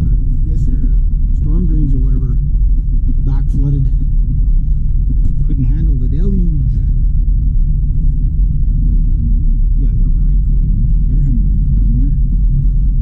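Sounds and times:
car engine and tyres rumbling: 0.0s - 13.0s.

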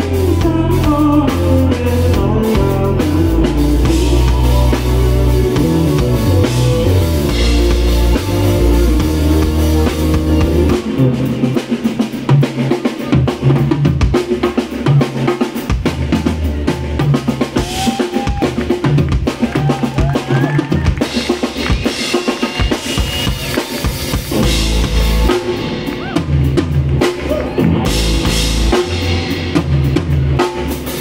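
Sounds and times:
sliding lead guitar notes: 0.0s - 13.3s, 20.5s - 31.0s
bass: 0.0s - 31.0s
drum kit: 0.0s - 31.0s
keyboards: 0.0s - 31.0s.

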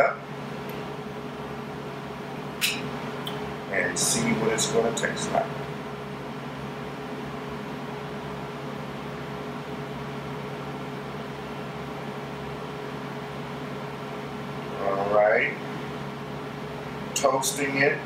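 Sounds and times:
low hum and hiss: 0.0s - 18.0s.

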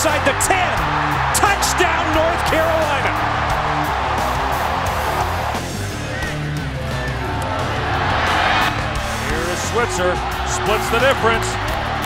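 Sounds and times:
guitar-driven background music: 0.0s - 12.0s
stadium crowd cheering: 0.0s - 12.0s.

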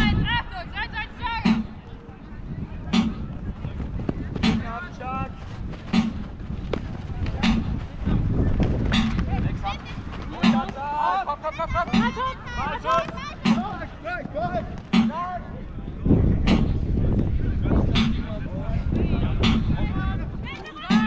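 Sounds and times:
drum struck at an even beat: 5.9s - 6.2s, 13.4s - 13.7s
players shouting: 9.6s - 15.5s.

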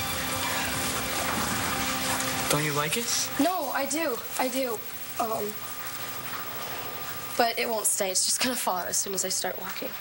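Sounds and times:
heavy rain: 0.0s - 10.0s.

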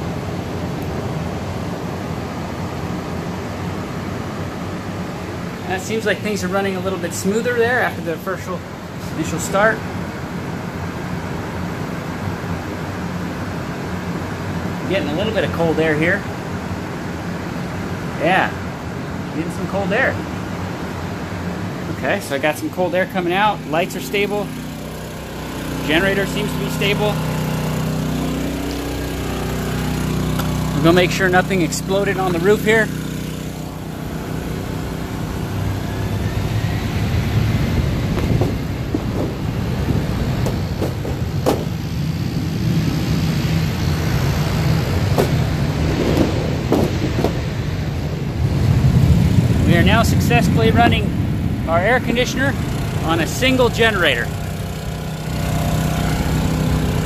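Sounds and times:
fan air rushing through vents: 0.0s - 57.0s
low hum: 20.3s - 57.0s.

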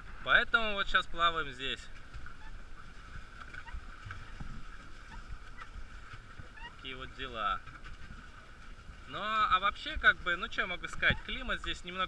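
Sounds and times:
low thumps of waves on hull: 0.0s - 12.0s
water sloshing and splashing: 0.0s - 12.0s.

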